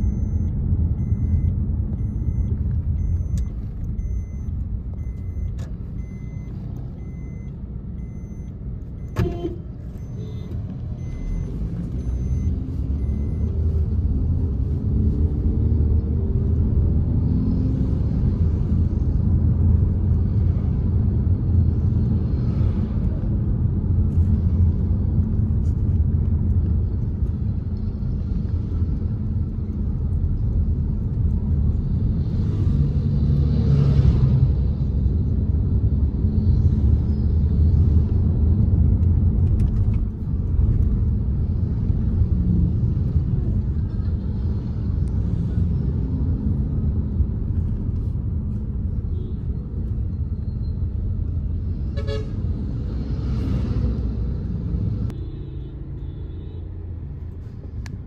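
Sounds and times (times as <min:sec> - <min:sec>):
car engine and road rumble: 0:00.0 - 0:58.0.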